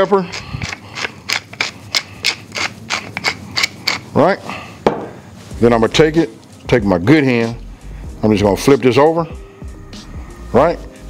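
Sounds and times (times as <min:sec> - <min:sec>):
pepper mill grinding: 0:00.0 - 0:04.3.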